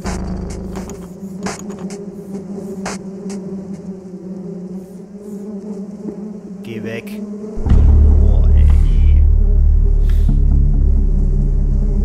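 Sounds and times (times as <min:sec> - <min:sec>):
low droning hum: 0:07.4 - 0:12.0
loud deep rumble: 0:07.6 - 0:12.0.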